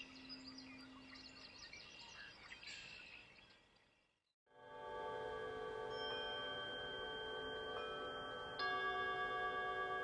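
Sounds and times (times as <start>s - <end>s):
chimes ringing: 4.7s - 10.0s.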